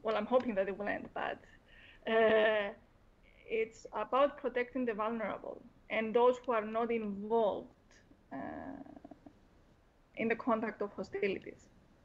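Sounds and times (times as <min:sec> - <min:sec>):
woman saying uh: 0:08.4 - 0:09.1.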